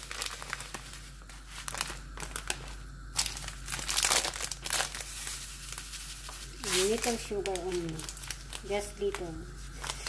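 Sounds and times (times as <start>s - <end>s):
plastic food packets crinkling: 0.0s - 10.0s.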